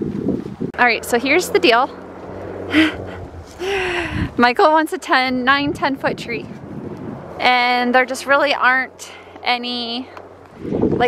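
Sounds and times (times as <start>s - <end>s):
woman gasping: 2.7s - 4.4s
woman laughing breathily: 2.7s - 4.4s.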